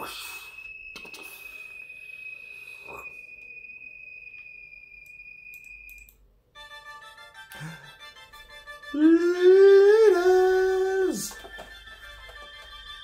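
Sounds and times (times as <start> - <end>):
high-pitched electronic tone: 0.0 - 6.2
music: 6.6 - 13.0.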